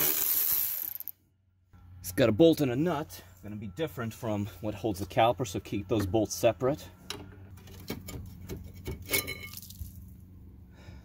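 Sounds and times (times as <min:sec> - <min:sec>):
steady low hum: 0:01.3 - 0:11.0.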